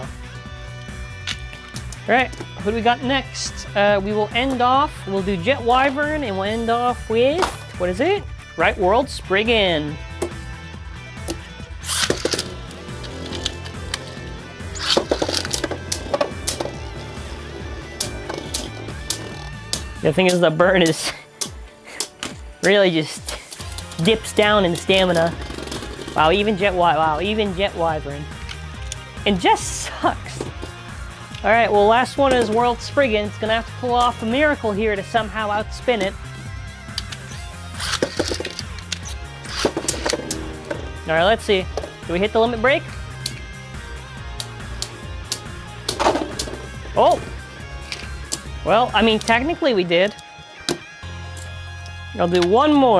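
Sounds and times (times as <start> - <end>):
background music with bass: 0.0 - 52.9
spinning tops clicking and clashing: 11.8 - 16.7.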